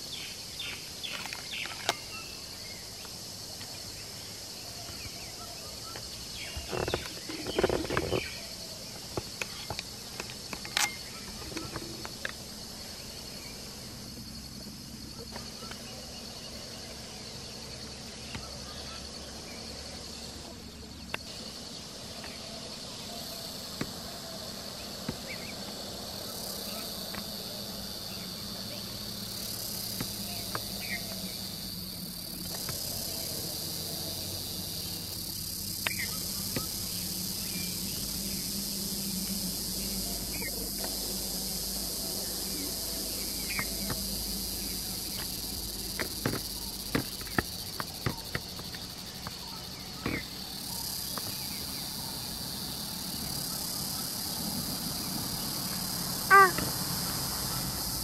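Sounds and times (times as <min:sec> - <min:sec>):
insect chorus drone: 0:00.0 - 0:58.0.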